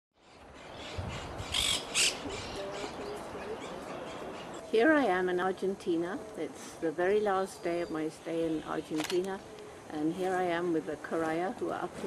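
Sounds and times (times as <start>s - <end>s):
harsh bird calls: 0.2s - 4.8s
natural background: 0.2s - 12.0s.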